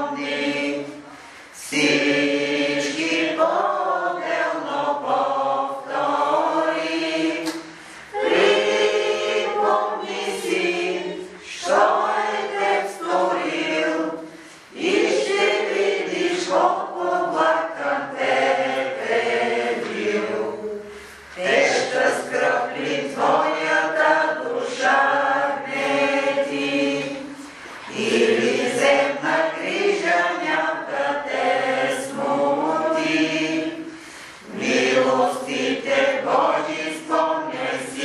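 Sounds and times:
congregation singing a hymn: 0.0s - 38.0s.

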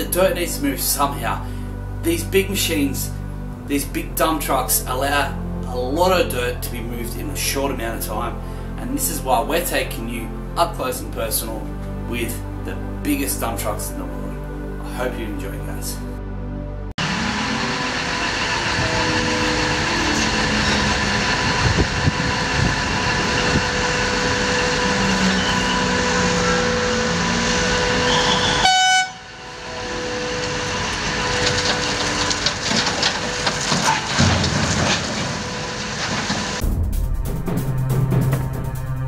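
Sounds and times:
heavy machinery din: 17.0s - 38.8s
short horn tone: 23.6s - 32.4s.

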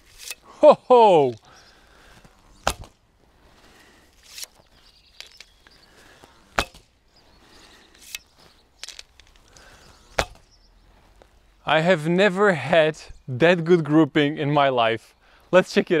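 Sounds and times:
arrow hitting rope target: 2.6s - 3.0s, 6.6s - 6.9s, 10.1s - 10.4s.

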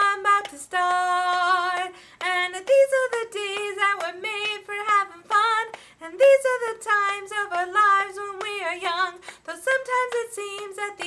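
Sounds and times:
woman singing unaccompanied: 0.0s - 11.0s.

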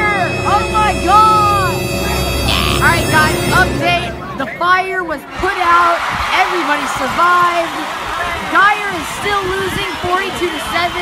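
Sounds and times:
steady droning tone: 0.0s - 5.0s
stadium crowd calling out: 0.0s - 11.0s.

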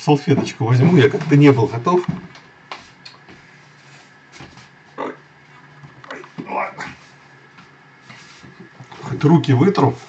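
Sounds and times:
light knocks and rustles: 7.5s - 9.2s.

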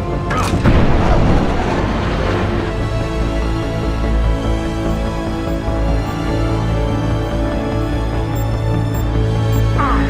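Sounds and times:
film soundtrack music: 0.0s - 10.0s
deep boom: 0.6s - 3.0s.

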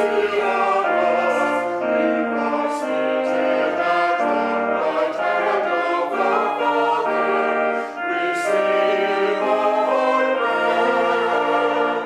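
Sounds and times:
choir singing a hymn: 0.0s - 12.0s.

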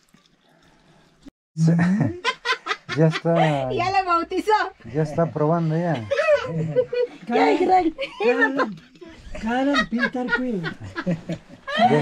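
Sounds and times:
people laughing: 1.6s - 3.8s, 4.8s - 12.0s
people talking: 3.0s - 10.8s.

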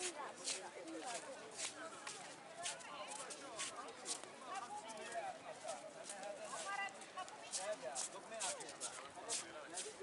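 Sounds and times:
indistinct chatter of passers-by: 0.0s - 10.0s.

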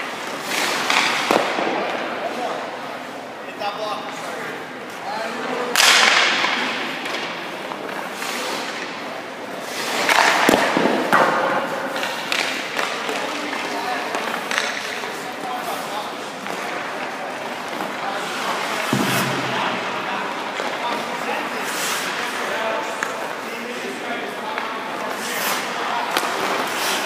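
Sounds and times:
sharp knock: 18.8s - 20.1s
skate blades scraping on ice: 24.9s - 27.0s.

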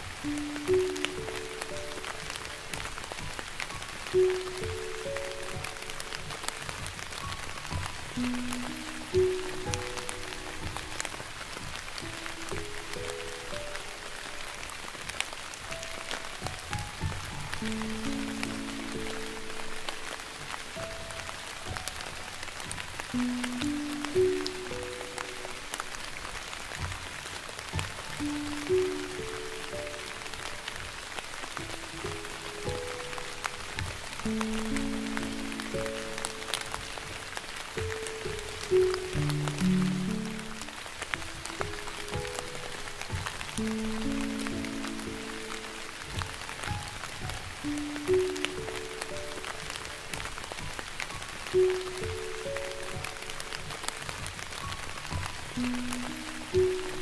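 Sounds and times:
gentle piano melody: 0.0s - 57.0s
raindrop clicks: 0.0s - 57.0s
soft rain hiss: 0.0s - 57.0s.

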